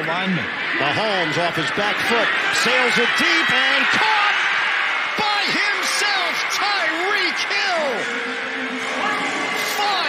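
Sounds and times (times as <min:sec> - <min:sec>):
loud excited voices: 0:00.0 - 0:10.0
stadium crowd din: 0:00.0 - 0:10.0.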